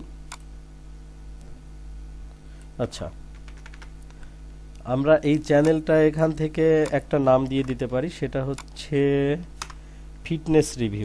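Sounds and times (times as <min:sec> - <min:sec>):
steady low hum: 0:00.0 - 0:11.0
computer keyboard key clicks: 0:03.3 - 0:03.9.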